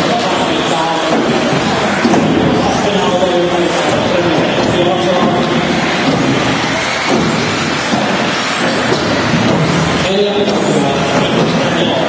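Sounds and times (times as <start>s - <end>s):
rc cars motor whine: 0.0s - 11.7s
rc car tyre noise: 0.0s - 12.0s.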